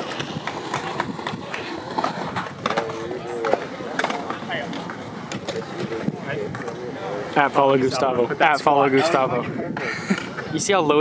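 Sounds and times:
skateboard clacks and knocks: 0.0s - 6.8s
wheels rolling on concrete: 0.0s - 11.0s.

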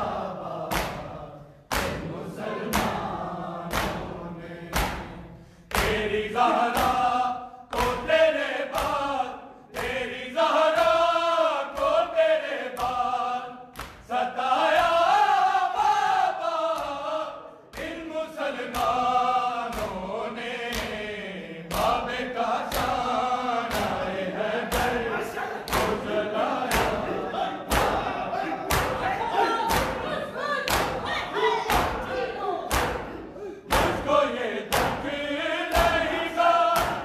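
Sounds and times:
men chanting in unison: 0.0s - 37.0s
hands slapping bare chests: 0.6s - 3.0s, 3.7s - 4.1s, 4.7s - 6.1s, 8.7s - 9.1s, 13.7s - 14.1s, 16.7s - 17.1s, 19.7s - 20.1s, 20.7s - 21.0s, 22.7s - 23.1s, 23.7s - 24.0s, 24.7s - 26.1s, 26.7s - 27.0s, 27.7s - 28.1s, 28.7s - 29.1s, 29.7s - 30.0s, 31.7s - 34.1s, 34.7s - 37.0s.

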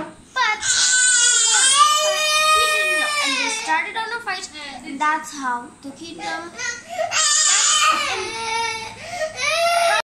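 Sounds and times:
girl's high-pitched voice: 0.3s - 1.0s, 2.1s - 6.8s.

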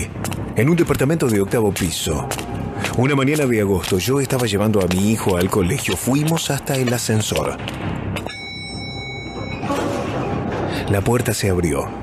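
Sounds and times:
low rumbling music: 0.0s - 12.0s
elevator bell ding: 8.2s - 9.9s.

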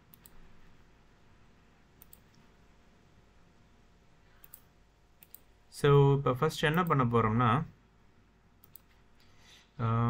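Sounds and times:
computer mouse clicks: 0.1s - 0.4s, 2.0s - 2.5s, 4.4s - 5.5s, 8.6s - 9.3s
man speaking: 5.7s - 7.8s, 9.8s - 10.0s.

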